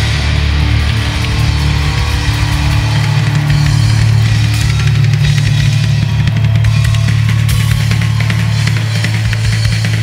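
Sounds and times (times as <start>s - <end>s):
live rock band playing: 0.0s - 10.0s
rapid drum kit hits: 0.0s - 10.0s.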